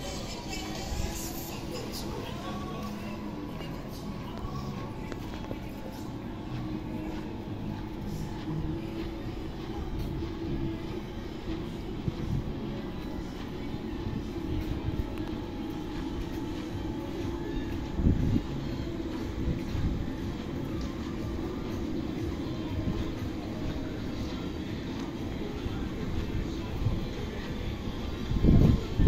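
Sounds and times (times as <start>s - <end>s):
wind buffeting microphone: 28.2s - 29.0s.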